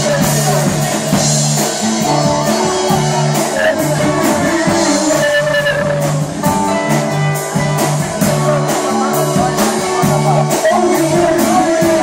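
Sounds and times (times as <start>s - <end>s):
electric guitar: 0.0s - 12.0s
steady drum beat: 0.0s - 12.0s.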